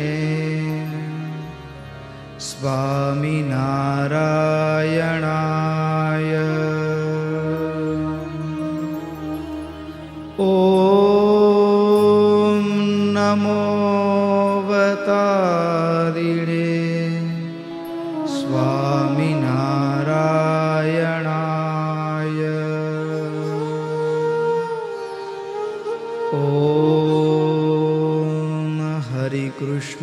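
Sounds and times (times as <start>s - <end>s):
man chanting: 2.4s - 9.7s, 10.4s - 24.8s, 26.1s - 30.0s.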